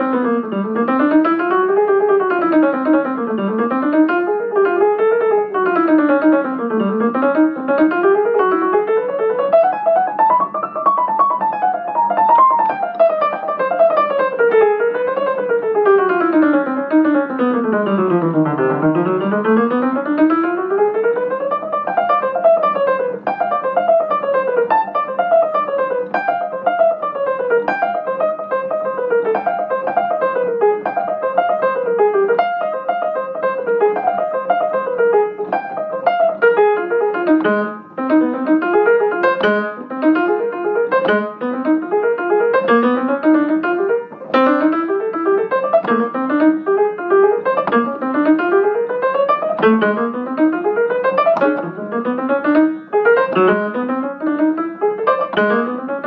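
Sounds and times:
jazz piano runs: 0.0s - 56.0s.

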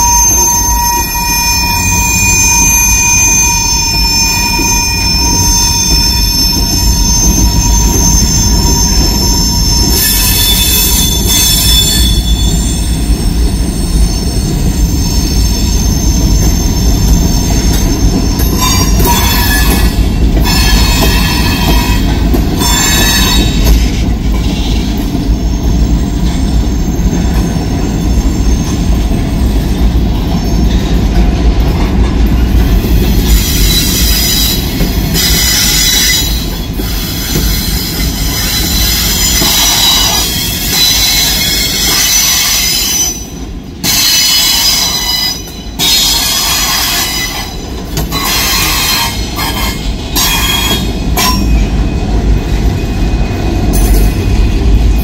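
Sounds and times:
high wheel squeal: 0.0s - 31.0s, 32.4s - 55.0s
freight train wheels rumbling on rail: 0.0s - 55.0s.

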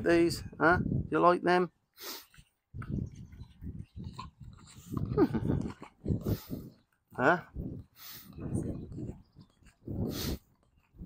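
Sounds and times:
horse rumbling: 2.8s - 6.8s.

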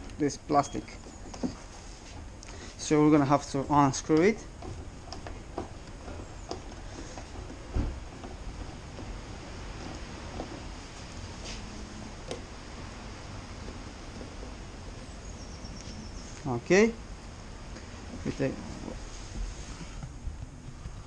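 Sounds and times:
steady low background hum: 0.0s - 21.0s.

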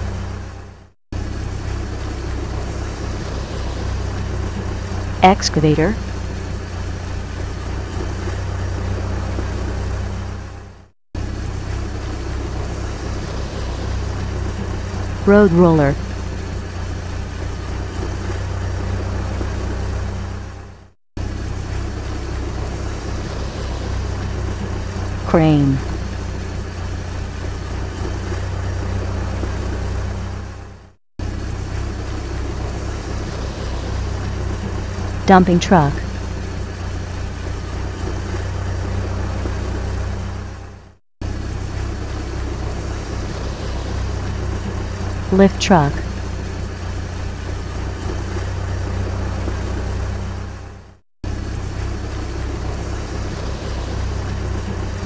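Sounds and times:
heavy vehicle engine humming: 0.0s - 55.0s.

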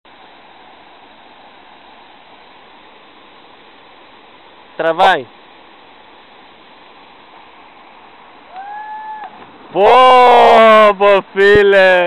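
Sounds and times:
waterfall rushing: 0.1s - 12.0s.

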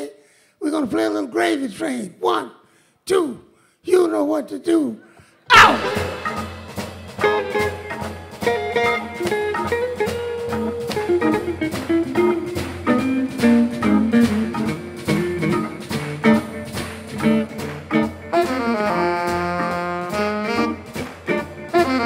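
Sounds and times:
soul jazz band playing: 5.5s - 22.0s
alto saxophone melody: 5.6s - 16.7s, 17.3s - 22.0s.

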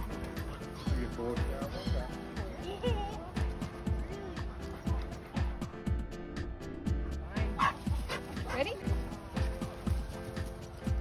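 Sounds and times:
music with steady beat: 0.0s - 11.0s
dog barking: 7.5s - 8.8s.

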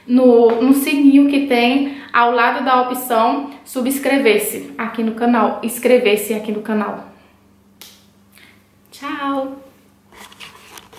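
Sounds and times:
faint steady hum: 0.0s - 10.9s.

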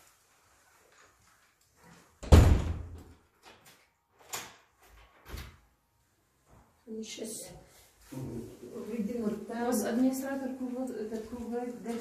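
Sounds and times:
door slamming shut: 2.2s - 3.1s.

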